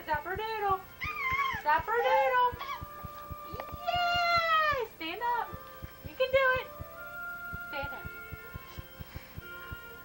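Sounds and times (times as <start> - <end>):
baby squealing and babbling: 1.0 - 2.8.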